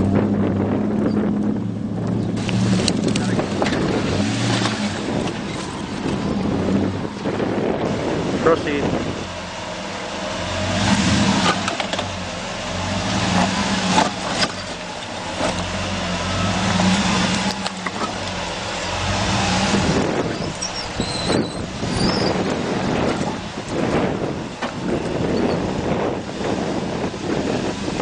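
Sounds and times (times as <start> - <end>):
truck engine running at low speed: 0.0 - 28.0
stones crunching under tires: 2.1 - 7.4, 12.8 - 24.0.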